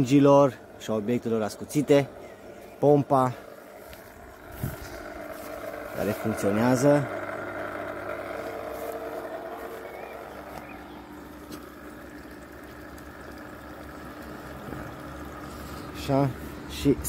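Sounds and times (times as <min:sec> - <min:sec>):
pool pump electric hum: 0:00.0 - 0:17.0.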